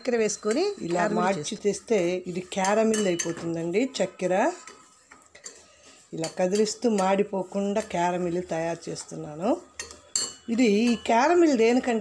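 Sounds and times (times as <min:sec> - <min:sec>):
metal spoon scraping saucepan: 0:02.3 - 0:11.8.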